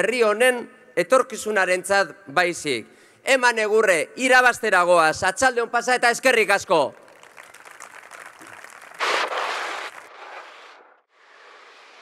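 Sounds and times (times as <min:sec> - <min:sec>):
audience applauding and cheering: 0:07.0 - 0:10.2.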